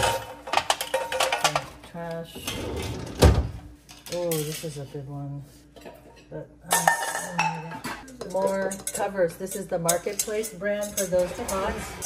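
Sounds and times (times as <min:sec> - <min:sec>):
metal pots and lids clanking: 0:00.0 - 0:01.7, 0:05.8 - 0:12.0.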